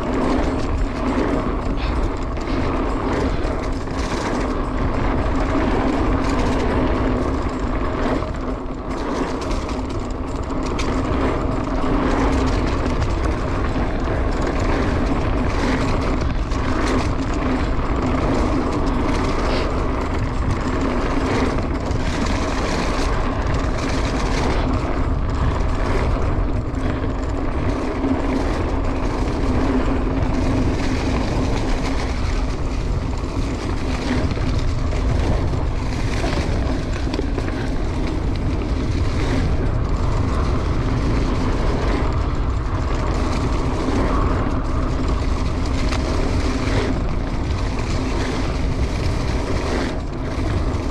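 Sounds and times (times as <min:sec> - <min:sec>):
bike knocks and rattles: 0:00.0 - 0:50.9
tyres rolling over dirt and leaves: 0:00.0 - 0:50.9
wind rushing on microphone: 0:00.0 - 0:50.9.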